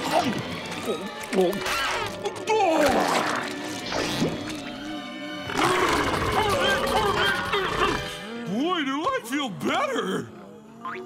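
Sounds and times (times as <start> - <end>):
background music: 0.0 - 11.0
cartoon monsters growling and roaring: 5.4 - 8.5.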